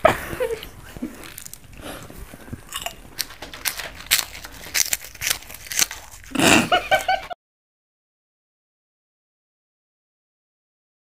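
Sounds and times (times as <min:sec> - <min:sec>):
crunchy snacks being chewed: 0:00.6 - 0:07.3.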